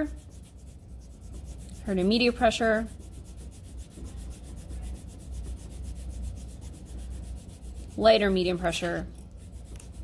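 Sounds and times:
pencil shading on paper: 0.0s - 8.8s, 9.4s - 10.0s.

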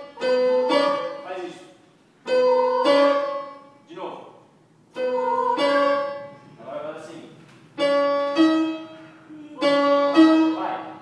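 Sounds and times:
piano-toned keyboard notes: 0.0s - 4.0s, 4.9s - 11.0s.

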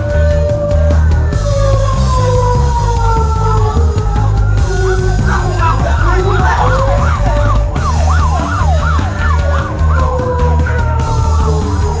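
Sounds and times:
bass guitar: 0.0s - 12.0s
drums: 0.0s - 12.0s
siren-like wail: 0.0s - 12.0s.

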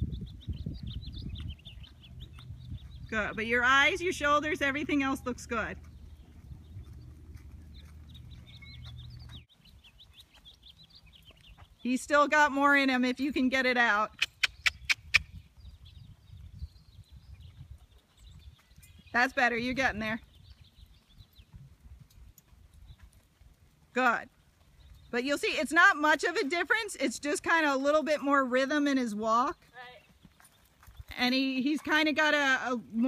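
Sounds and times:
small birds chirping: 0.0s - 33.0s
faint low rumble: 1.0s - 9.5s
faint hoofbeats: 1.0s - 12.0s, 29.4s - 32.6s.

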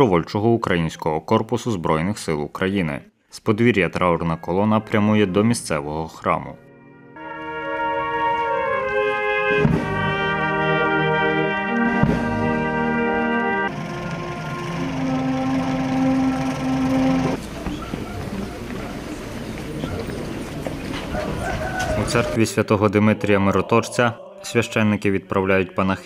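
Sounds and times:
brass band funeral march: 6.8s - 18.7s.

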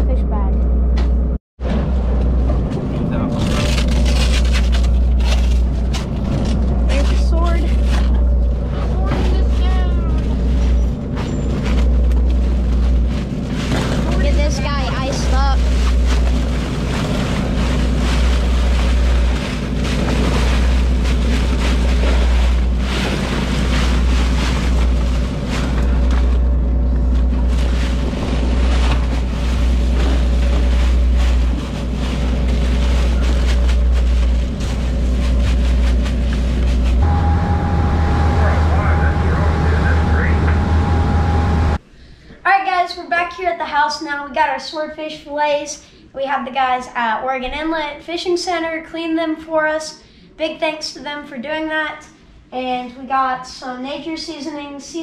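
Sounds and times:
boat engine running: 0.0s - 41.8s
crushed ice rattling: 3.3s - 8.2s, 8.9s - 26.4s, 27.1s - 37.0s.

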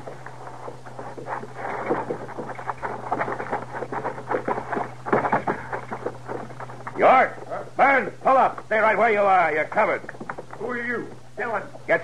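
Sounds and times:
feet scrambling over gravel: 0.0s - 7.0s
low recording hum: 0.0s - 12.0s.

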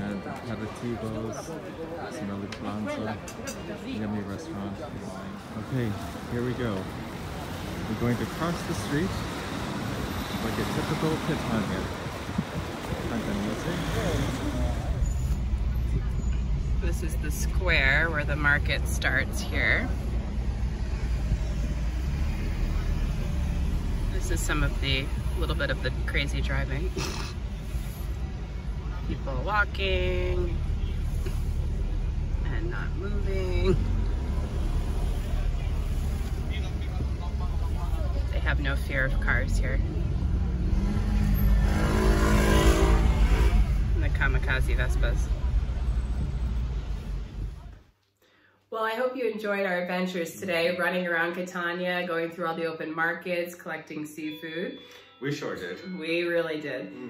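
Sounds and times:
car engine and road rumble: 0.0s - 48.0s
street noise: 0.0s - 57.0s.

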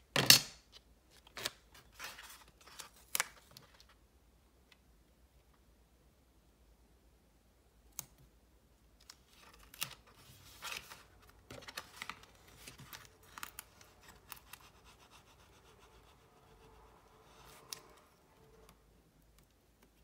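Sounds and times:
paper rustling: 9.0s - 15.0s.

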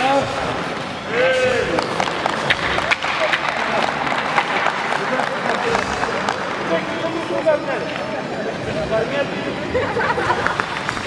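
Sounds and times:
audience applauding: 1.6s - 7.6s, 10.2s - 11.0s.

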